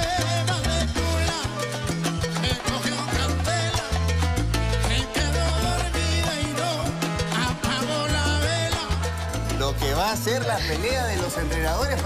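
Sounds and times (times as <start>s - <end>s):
acoustic guitar: 0.0s - 12.0s
bongos: 0.0s - 12.0s
stepping bass line: 2.4s - 12.0s.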